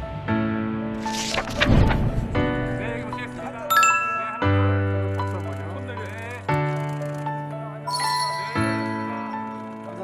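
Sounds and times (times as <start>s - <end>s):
background music with held chords: 2.2s - 9.8s.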